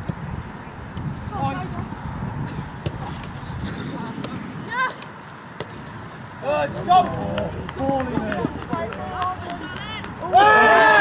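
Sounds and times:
ball kicking thuds: 0:02.5 - 0:09.0.

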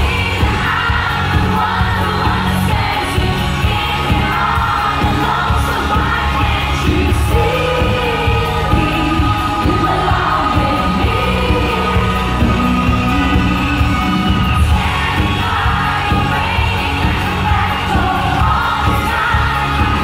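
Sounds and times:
live pop band: 0:00.0 - 0:20.0
woman singing: 0:00.0 - 0:20.0.

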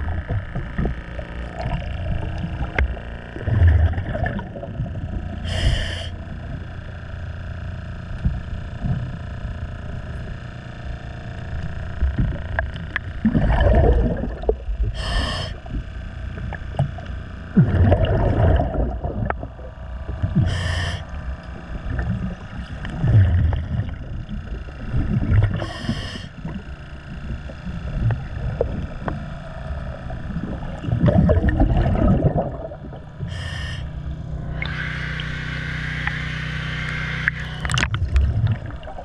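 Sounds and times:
gurgling exhaled bubbles: 0:00.0 - 0:05.9, 0:12.1 - 0:33.8, 0:37.2 - 0:39.0
regulator hissing inhalations: 0:05.4 - 0:06.2, 0:15.0 - 0:15.6, 0:20.4 - 0:21.1, 0:25.6 - 0:26.4, 0:33.2 - 0:33.9.

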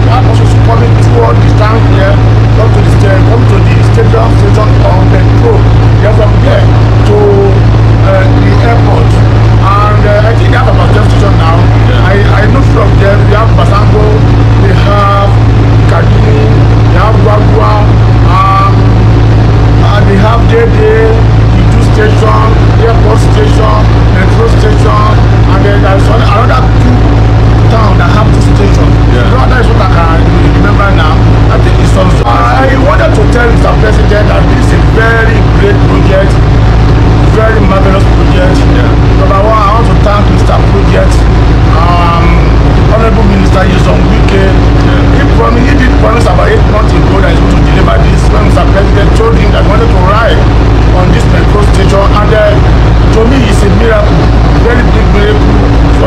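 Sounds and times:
man talking: 0:00.0 - 0:56.0
train carriage low hum: 0:00.0 - 0:56.0.

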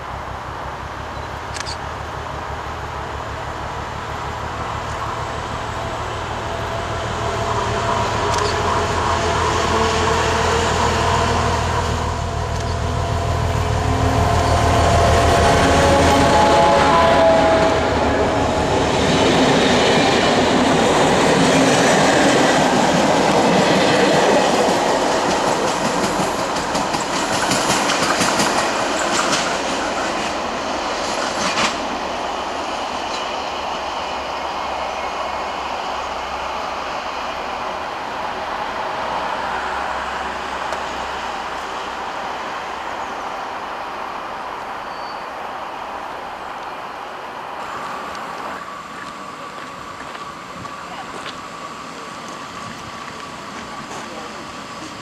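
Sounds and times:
diesel locomotive engine rumble: 0:00.0 - 0:55.0
train wheels clicking over rail joints: 0:19.2 - 0:32.0.

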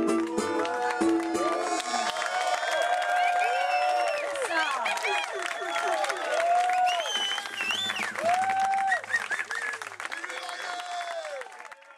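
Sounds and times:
crowd clapping: 0:00.0 - 0:11.9
voices calling out and cheering: 0:00.4 - 0:11.9.

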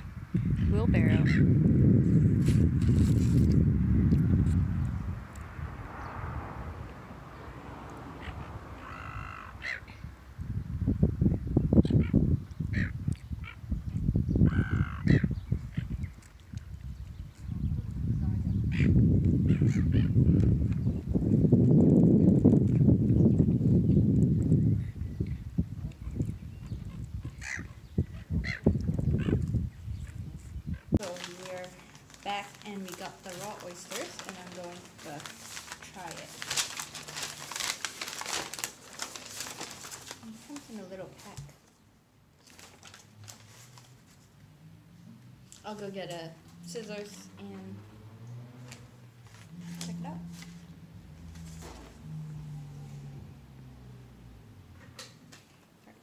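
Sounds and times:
wind buffeting microphone: 0:00.0 - 0:41.4
gull calling: 0:00.6 - 0:01.5, 0:08.2 - 0:10.0, 0:11.8 - 0:13.6, 0:14.4 - 0:16.0, 0:27.3 - 0:29.4.

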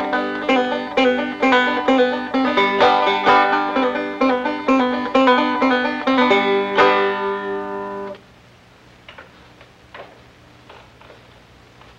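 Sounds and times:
low steady hum: 0:00.0 - 0:11.9.

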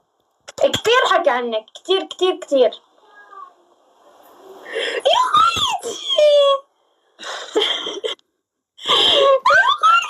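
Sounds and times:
people laughing and squealing: 0:09.2 - 0:10.0.

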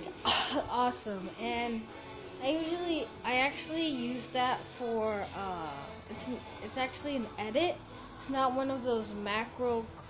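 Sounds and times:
child singing: 0:00.7 - 0:10.0.

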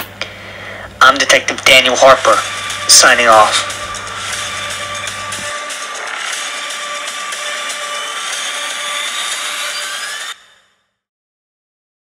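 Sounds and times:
rising tones: 0:02.4 - 0:10.4.

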